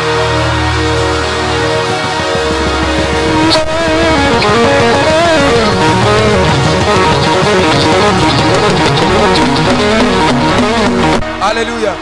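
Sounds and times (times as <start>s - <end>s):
strummed electric guitar: 0.0s - 11.7s
live band playing: 0.9s - 11.3s.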